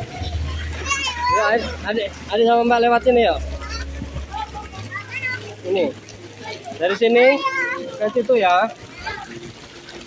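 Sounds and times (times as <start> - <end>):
children calling out: 0.0 - 1.8
water splashing: 0.0 - 10.0.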